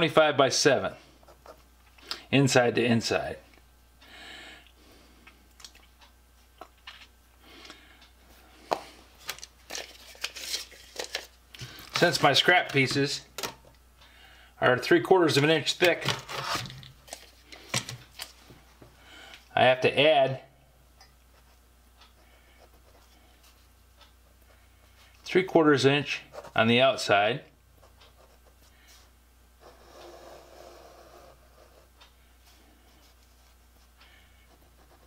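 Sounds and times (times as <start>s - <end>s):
low steady hum: 0.0s - 35.0s
pen scratching on paper: 29.6s - 31.9s.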